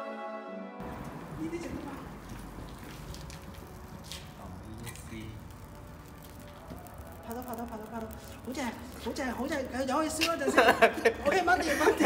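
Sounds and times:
sharp hissing crackles: 0.8s - 12.0s.

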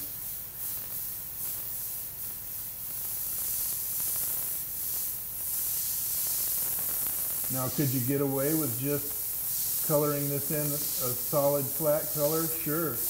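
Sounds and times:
airbrush hissing: 0.0s - 13.0s.

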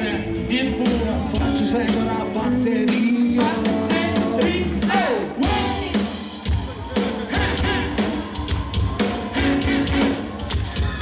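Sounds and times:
person singing: 0.0s - 6.3s
live rock band: 0.0s - 11.0s.

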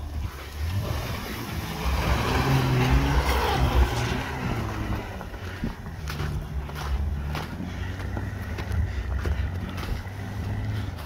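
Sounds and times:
car engine revving: 0.0s - 11.0s
tyres on snow: 0.0s - 11.0s.

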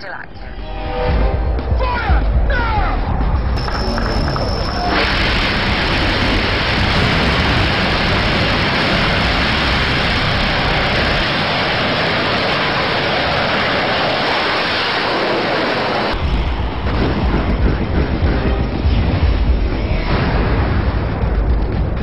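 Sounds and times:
deep rumble: 0.0s - 22.0s
rocket exhaust roar: 3.2s - 22.0s.

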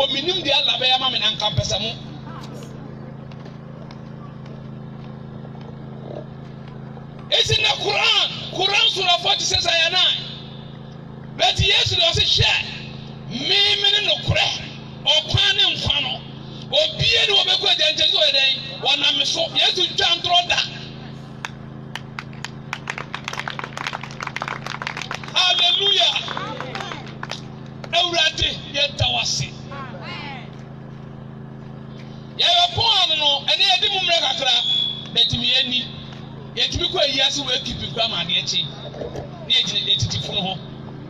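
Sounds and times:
man preaching over loudspeaker: 0.0s - 2.2s, 7.3s - 10.5s, 11.4s - 21.0s, 25.3s - 27.0s, 27.9s - 30.1s, 32.4s - 38.9s, 39.5s - 40.7s
steady low hum: 0.0s - 41.0s
hand claps: 21.4s - 28.0s.

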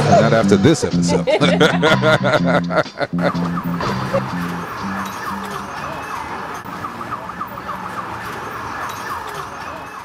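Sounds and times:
siren-like swooping wail: 3.2s - 10.0s.

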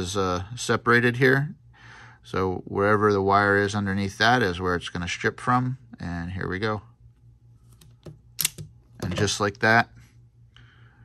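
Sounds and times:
wire stripper clicks: 7.7s - 8.7s
wire stripper snapping: 7.7s - 9.2s.

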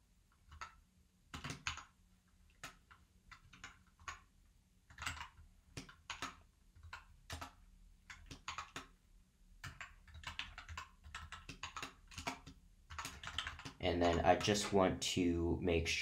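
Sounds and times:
computer keyboard typing: 0.4s - 4.3s, 4.9s - 9.0s, 9.6s - 15.0s.

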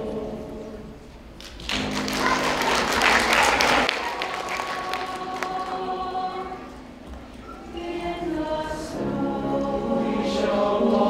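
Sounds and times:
choir singing: 0.0s - 1.1s, 2.0s - 11.0s
piano: 0.0s - 11.0s.

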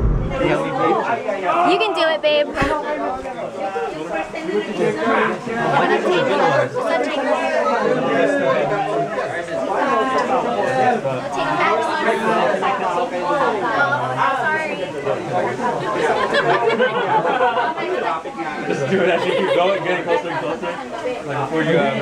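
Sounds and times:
group chatter: 0.0s - 22.0s.

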